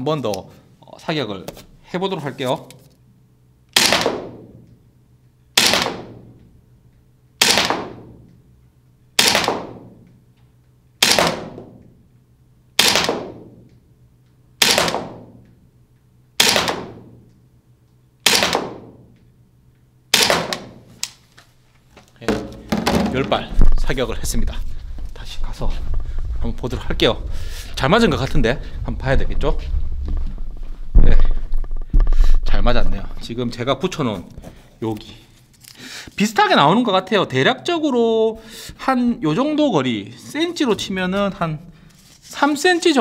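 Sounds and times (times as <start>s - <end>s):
airsoft gun shots echoing: 3.7s - 4.6s, 5.6s - 6.4s, 7.4s - 8.3s, 9.2s - 10.0s, 11.0s - 11.8s, 12.8s - 13.7s, 14.6s - 15.4s, 16.4s - 17.2s, 18.2s - 19.2s, 20.1s - 21.0s.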